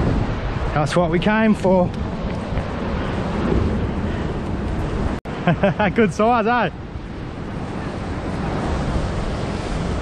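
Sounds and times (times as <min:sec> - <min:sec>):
wind on microphone: 0:00.0 - 0:05.2, 0:06.4 - 0:10.0
man laughing: 0:05.4 - 0:06.3.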